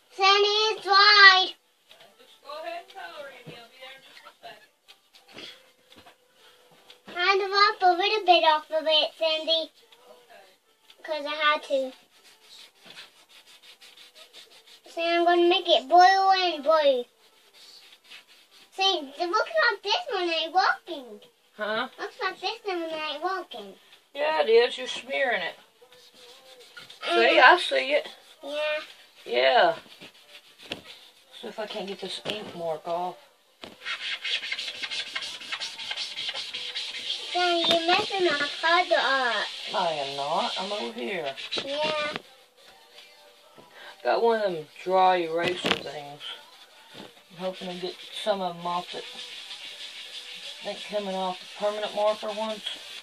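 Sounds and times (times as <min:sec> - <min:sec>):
marker rubbing on tabletop: 0:11.2 - 0:20.9, 0:25.9 - 0:33.0, 0:33.6 - 0:43.5, 0:44.4 - 0:53.0.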